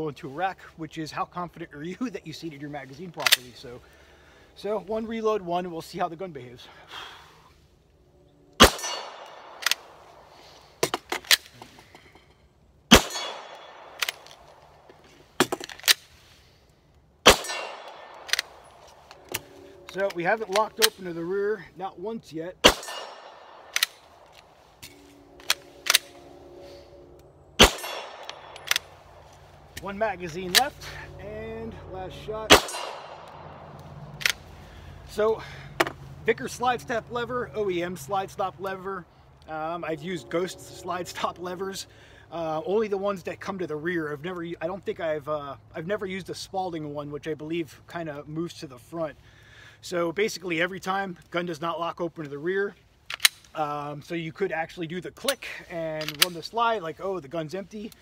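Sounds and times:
pistol shots: 8.6 - 10.0, 12.9 - 14.2, 17.2 - 18.6, 22.6 - 24.0, 27.6 - 28.9, 32.5 - 33.6
magazine change clicks: 12.9 - 14.6, 17.3 - 21.0, 22.6 - 26.3, 27.6 - 28.9, 32.5 - 34.5, 53.1 - 53.5, 56.0 - 56.4.

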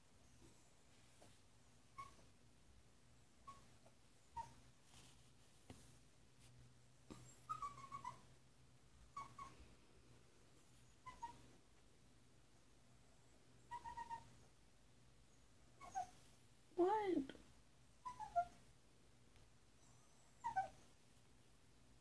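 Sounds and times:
puppy whining: 1.8 - 2.4, 3.4 - 4.8, 7.1 - 8.4, 9.0 - 9.7, 10.8 - 11.6, 13.6 - 14.6, 15.2 - 16.3, 18.0 - 18.7, 19.7 - 21.0.

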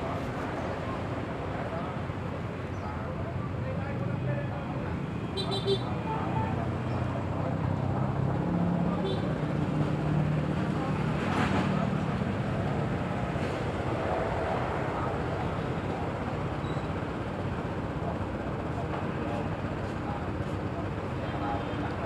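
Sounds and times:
road traffic noise: 0.0 - 22.0.

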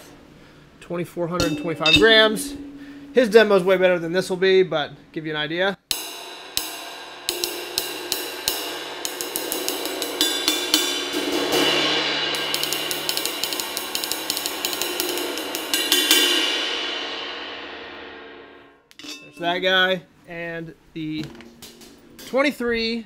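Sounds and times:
ride cymbal struck with drumstick: 1.4 - 3.8, 5.9 - 18.1.

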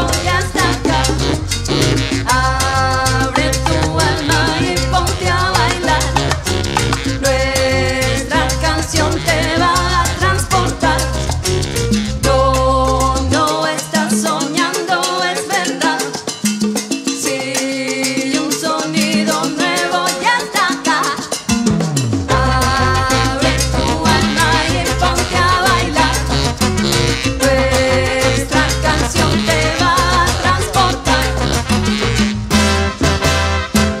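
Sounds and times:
salsa band playing: 0.0 - 34.0.

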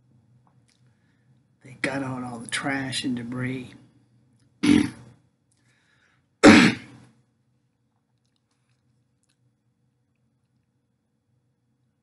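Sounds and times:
man clearing his throat: 4.6 - 5.1, 6.4 - 7.0.

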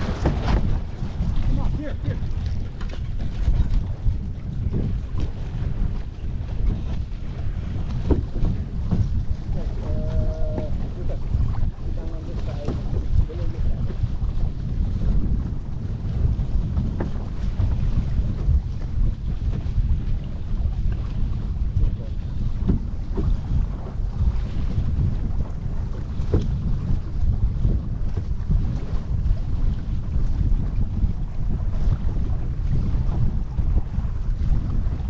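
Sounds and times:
water rushing along hulls: 0.0 - 35.0
wind buffeting microphone: 0.0 - 35.0.

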